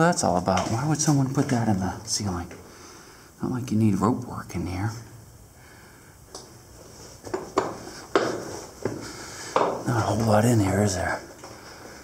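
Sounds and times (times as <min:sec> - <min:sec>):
footsteps on rocky cave floor: 0:06.8 - 0:12.0.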